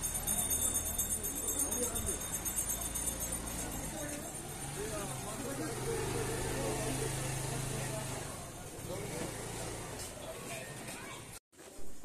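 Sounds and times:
people talking: 0:00.0 - 0:11.4.

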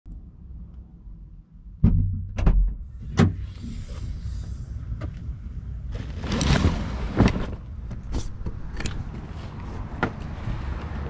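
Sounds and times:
low rumble: 0:00.1 - 0:08.1.

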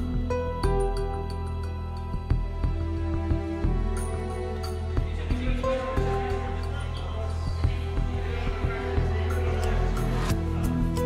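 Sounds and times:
slow sad music: 0:00.0 - 0:11.0.

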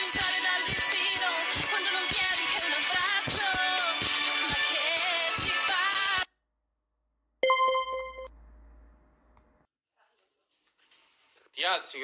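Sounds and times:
ringing ding tone pulsing: 0:07.4 - 0:08.3.

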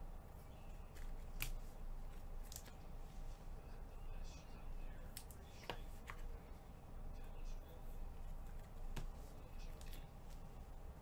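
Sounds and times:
cards swishing against each other: 0:00.8 - 0:03.4.

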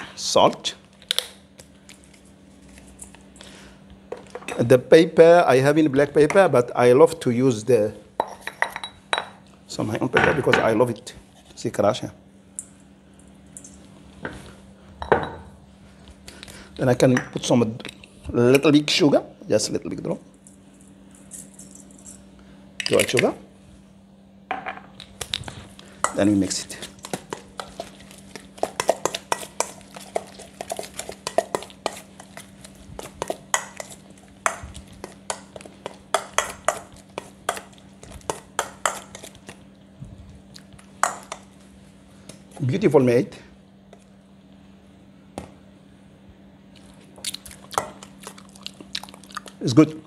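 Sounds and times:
spoon scraping stone mortar: 0:26.1 - 0:39.5.

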